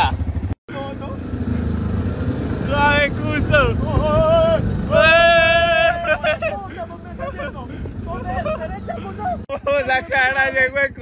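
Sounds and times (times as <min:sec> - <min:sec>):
quad bike engine running: 0:00.0 - 0:11.0.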